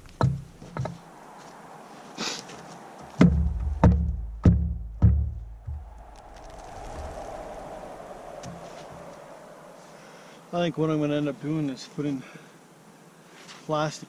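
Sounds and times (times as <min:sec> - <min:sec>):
hatchet blows on wooden log: 0:03.2 - 0:05.9.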